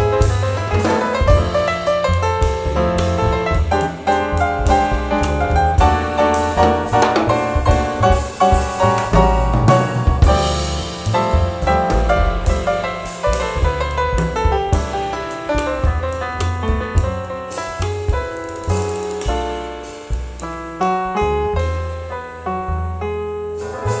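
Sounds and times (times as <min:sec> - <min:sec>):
jazz quartet playing: 0:00.0 - 0:24.0.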